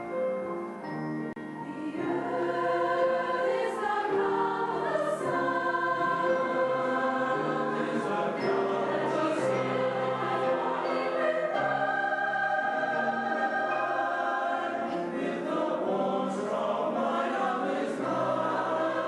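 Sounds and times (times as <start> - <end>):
mixed choir singing in parts: 1.6 - 19.0.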